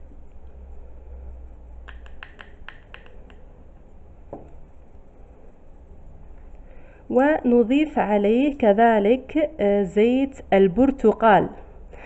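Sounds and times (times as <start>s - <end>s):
low steady hum: 0.0s - 12.0s
plastic spoon clicking on jar: 1.9s - 3.4s.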